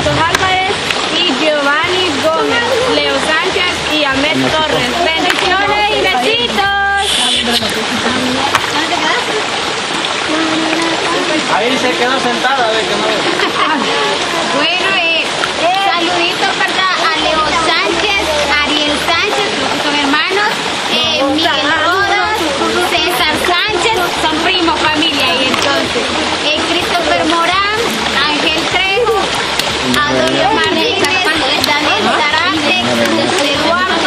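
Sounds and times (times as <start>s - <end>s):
people talking and laughing: 0.0s - 34.0s
water running over rocks: 0.0s - 34.0s.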